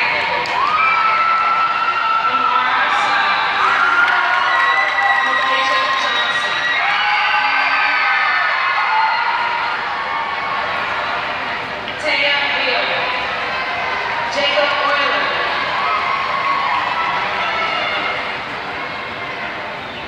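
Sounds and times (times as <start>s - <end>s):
crowd cheering and yelling: 0.0s - 20.0s
long drawn-out shouts: 0.3s - 11.6s.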